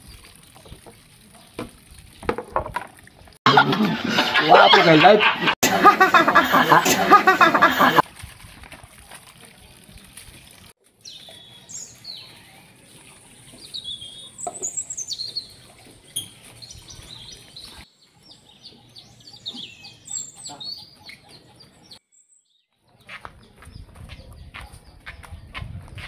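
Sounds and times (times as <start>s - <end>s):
birds chirping: 11.0s - 26.0s.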